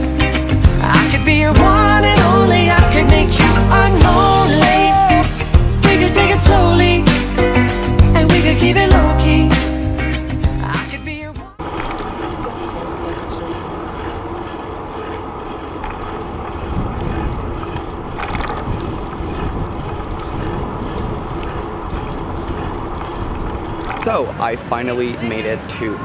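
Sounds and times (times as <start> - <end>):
wind on microphone: 11.6 - 25.3
bicycle tyres rolling on pavement: 11.6 - 26.0.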